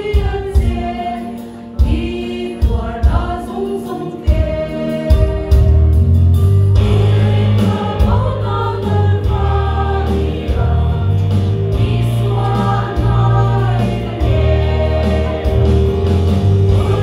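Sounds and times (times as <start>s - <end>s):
women's group singing a hymn: 0.0s - 6.0s, 6.8s - 17.0s
deep bass accompaniment: 5.4s - 17.0s.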